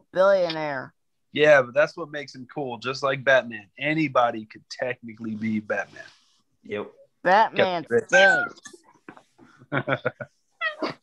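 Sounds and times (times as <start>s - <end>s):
people laughing: 9.7s - 10.3s.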